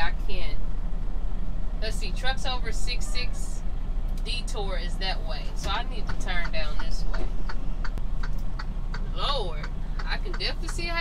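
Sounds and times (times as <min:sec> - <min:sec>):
diesel engine running: 0:00.0 - 0:11.0
turn signal clicking: 0:05.4 - 0:11.0.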